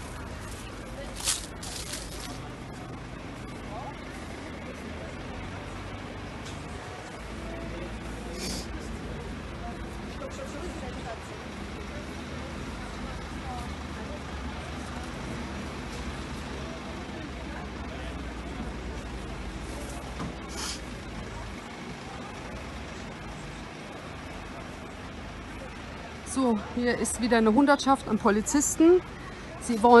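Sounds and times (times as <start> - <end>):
distant voices: 0.0 - 30.0
low engine rumble: 0.0 - 30.0.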